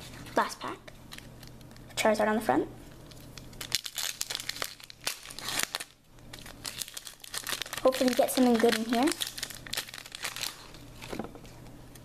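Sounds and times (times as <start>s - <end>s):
foil wrapper crinkling and tearing: 3.0s - 11.2s.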